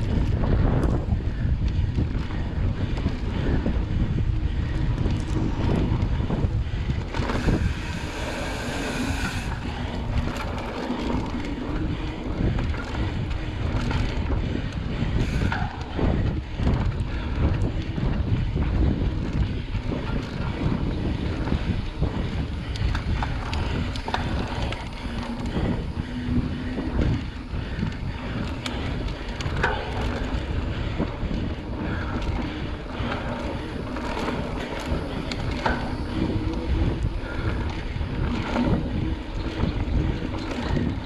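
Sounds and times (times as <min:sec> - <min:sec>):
wind buffeting microphone: 0:00.0 - 0:41.0
bike knocks and rattles: 0:09.5 - 0:41.0.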